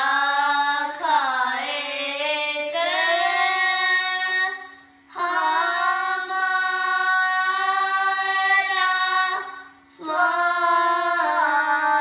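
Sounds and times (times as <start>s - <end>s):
children singing: 0.0s - 12.0s.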